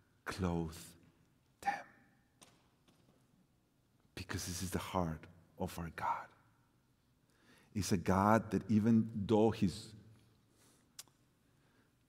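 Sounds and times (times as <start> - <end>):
man speaking softly: 1.6 - 2.0, 7.7 - 10.1.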